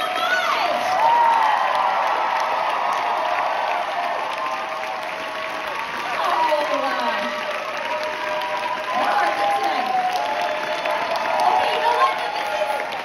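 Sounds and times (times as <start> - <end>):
audience applauding: 0.0 - 13.0
people cheering: 0.0 - 13.0.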